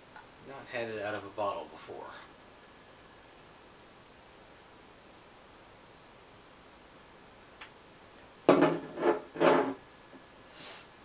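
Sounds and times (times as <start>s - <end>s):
glass bottle scraping on wooden table: 8.5s - 9.8s
short soft hiss: 10.5s - 11.0s.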